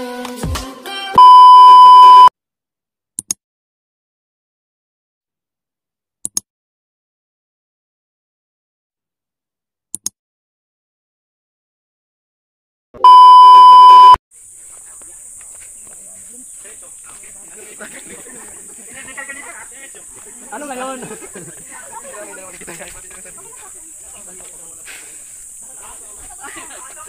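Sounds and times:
loud steady test tone beep: 1.2s - 2.3s, 13.0s - 14.2s
steady high hiss: 14.4s - 27.0s.

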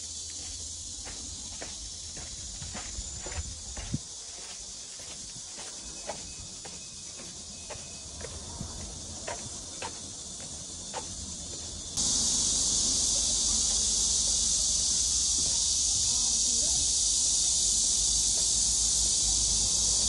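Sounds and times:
insect chorus: 0.0s - 20.0s
footsteps on dirt path: 0.1s - 11.8s, 15.3s - 16.3s.

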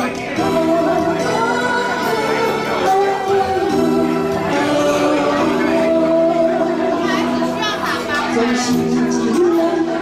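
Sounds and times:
karaoke backing track: 0.0s - 10.0s
voices singing: 0.0s - 10.0s.

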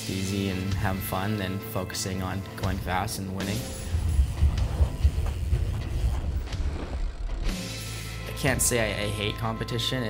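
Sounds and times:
background music: 0.0s - 10.0s
bike tyres on dirt: 3.6s - 7.6s.

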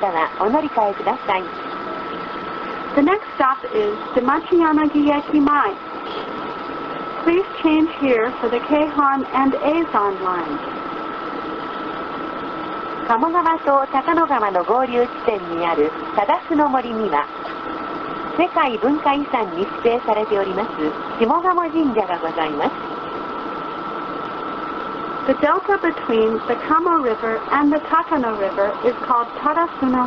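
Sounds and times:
bus engine drone: 0.0s - 30.0s.

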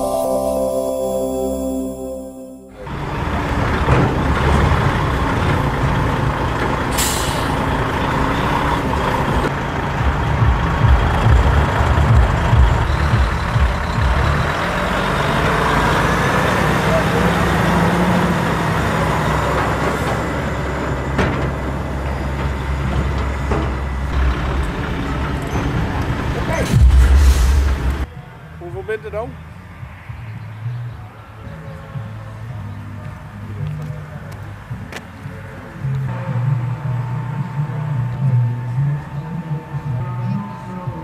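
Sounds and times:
diesel truck engine running: 2.9s - 26.9s
air brake hiss: 7.0s - 7.7s.

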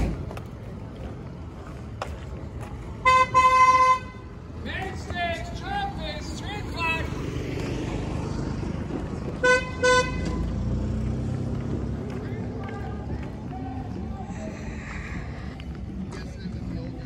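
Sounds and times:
voices: 0.0s - 10.5s, 11.6s - 17.0s
engine rumbling: 0.0s - 17.0s
car horn honks: 3.0s - 4.3s, 9.4s - 10.5s.

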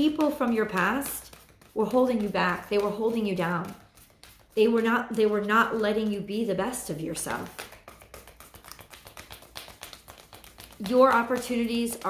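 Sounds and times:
cards being shuffled: 0.0s - 6.0s, 6.8s - 12.0s.

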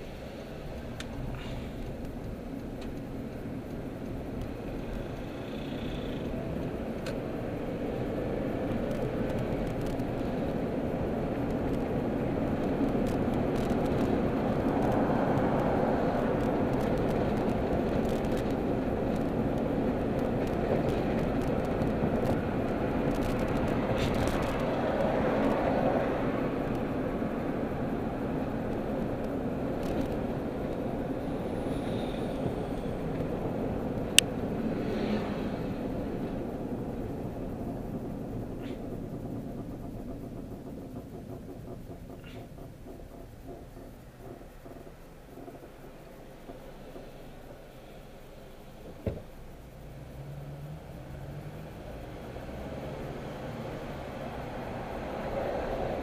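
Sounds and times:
road and engine noise in car: 0.0s - 56.0s.

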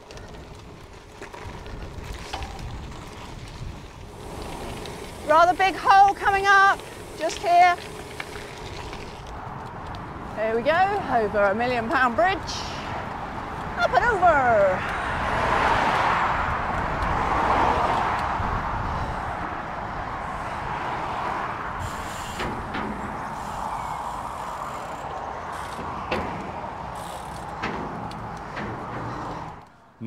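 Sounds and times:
bike clicks and knocks: 0.0s - 10.2s, 21.9s - 29.8s
bike tyres on gravel: 0.0s - 29.8s
rushing wind: 0.0s - 30.0s.

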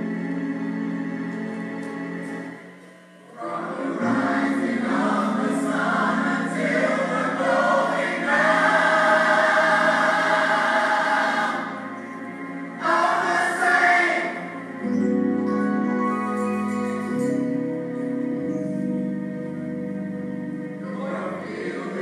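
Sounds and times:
keyboard backing: 0.0s - 22.0s
choir singing gospel song: 3.3s - 15.0s, 20.8s - 22.0s.

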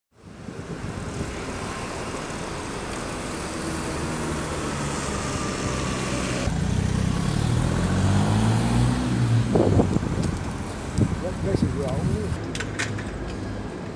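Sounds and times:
street traffic: 0.1s - 13.9s.

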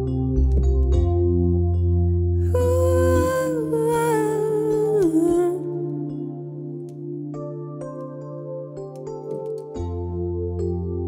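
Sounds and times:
electric keyboard chords: 0.0s - 11.0s.

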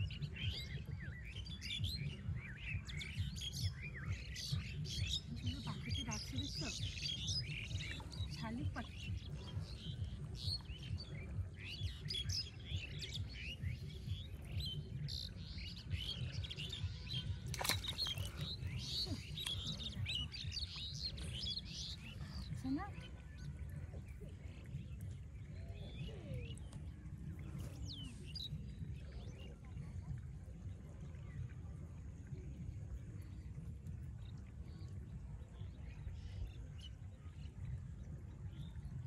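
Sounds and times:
small birds chirping: 0.0s - 31.4s, 32.3s - 39.0s
steady low rumble: 0.0s - 39.0s.

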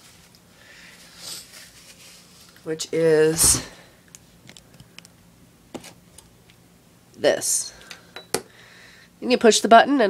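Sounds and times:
soft handling rustle: 0.0s - 4.7s
faint steady hum: 0.0s - 10.0s.

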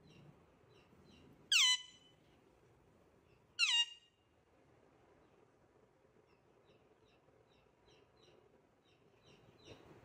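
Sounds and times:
parakeet calls: 1.5s - 2.0s, 3.6s - 4.0s.

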